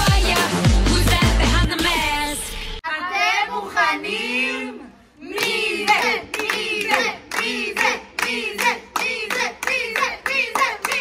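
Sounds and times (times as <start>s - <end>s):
young voices singing a chant: 2.8s - 11.0s
hands clapping rhythmically: 5.3s - 11.0s.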